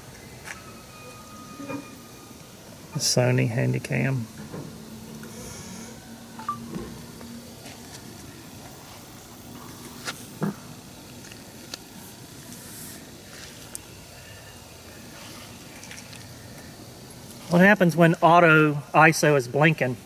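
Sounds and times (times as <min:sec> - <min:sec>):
background hiss: 0:00.0 - 0:20.0.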